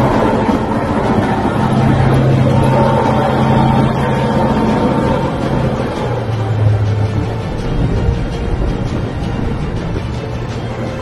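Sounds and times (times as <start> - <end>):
background music: 0.0 - 11.0
tank engine droning: 0.0 - 11.0.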